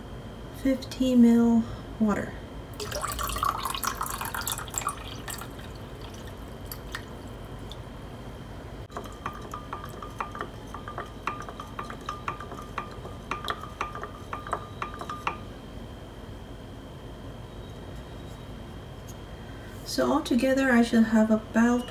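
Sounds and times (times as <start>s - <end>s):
water pouring into cup: 2.8s - 7.8s
drops plinking into liquid: 8.9s - 15.4s.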